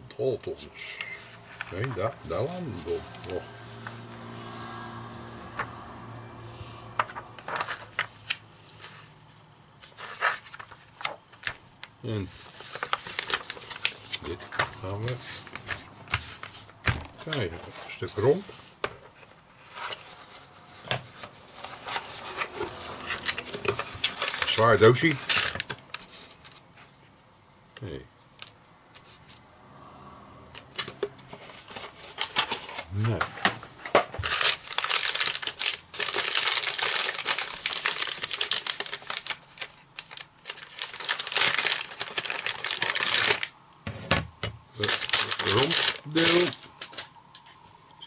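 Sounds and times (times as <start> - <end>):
cardboard and paper crackling: 0.9 - 4.1, 7.0 - 27.2, 30.8 - 43.5, 44.8 - 47.7.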